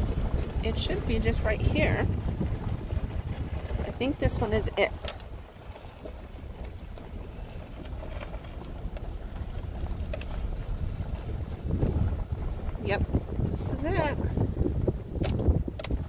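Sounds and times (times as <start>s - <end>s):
vehicle rumbling on dirt road: 0.0s - 16.0s
wind buffeting microphone: 0.0s - 16.0s.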